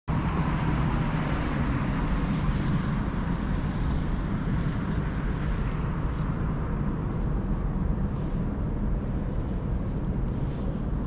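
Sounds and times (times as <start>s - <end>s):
distant road traffic: 0.1s - 11.0s
wind on microphone: 0.1s - 11.0s.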